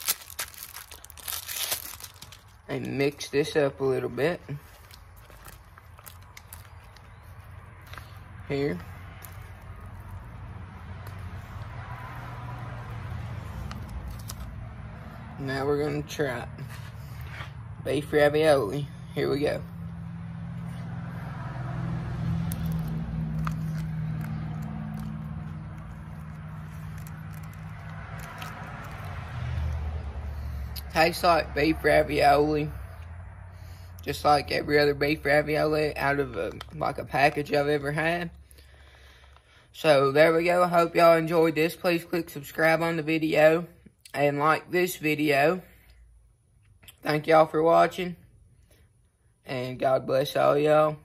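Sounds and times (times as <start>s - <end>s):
pouch crinkling: 0.0s - 2.7s, 4.7s - 7.2s, 22.5s - 29.1s
person chewing food: 4.6s - 14.6s, 22.3s - 29.8s.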